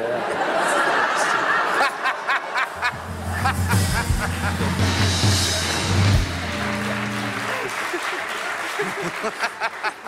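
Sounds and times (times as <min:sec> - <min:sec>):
music with deep bass line: 0:02.9 - 0:07.6
woman laughing: 0:07.6 - 0:10.0.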